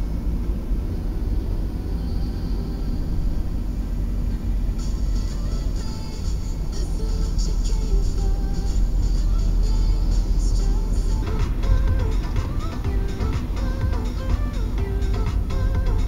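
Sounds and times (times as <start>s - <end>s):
car rumble on wet road: 0.1s - 16.0s
music playing: 1.8s - 16.0s.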